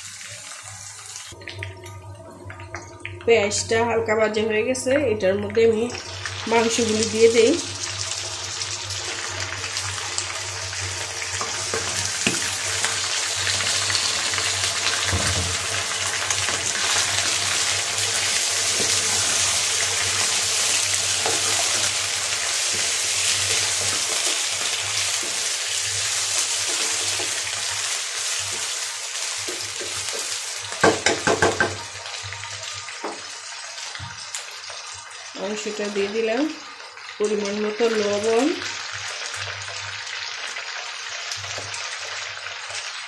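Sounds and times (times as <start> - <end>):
chicken sizzling in hot oil: 0.0 - 1.4, 5.7 - 43.0.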